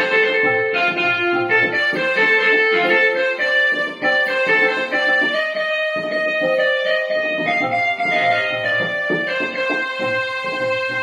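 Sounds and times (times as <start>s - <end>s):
electronic keyboard melody: 0.0s - 11.0s.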